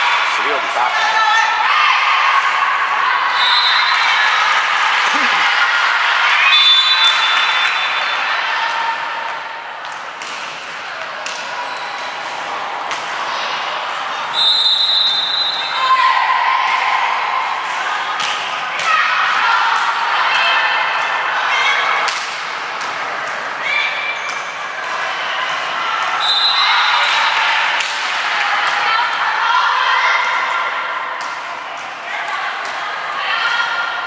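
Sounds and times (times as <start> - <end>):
people shouting and cheering: 0.0 - 34.0
whistle blasts: 3.4 - 4.2, 6.5 - 8.2, 14.3 - 16.0, 26.2 - 27.3.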